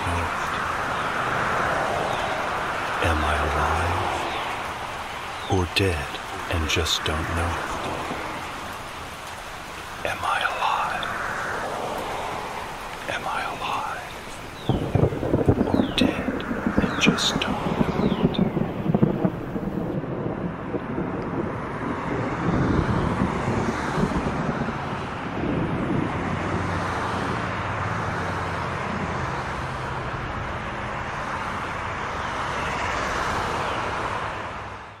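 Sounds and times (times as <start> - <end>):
wind on microphone: 10.3 - 30.4.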